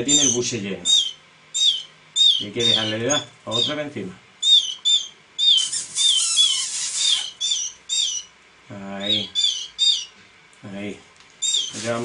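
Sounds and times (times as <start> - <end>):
canary chick chirping: 0.0 - 10.2, 11.4 - 12.0.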